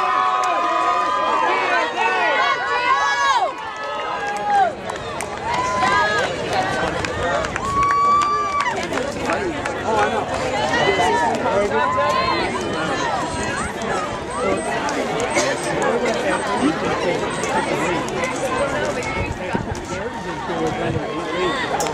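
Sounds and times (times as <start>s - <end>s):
long drawn-out yells: 0.0s - 4.8s
crowd shouting: 0.0s - 21.9s.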